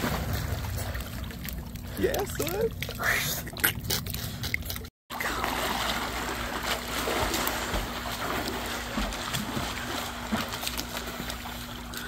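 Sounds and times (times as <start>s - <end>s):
pool water splashing: 0.0s - 12.0s.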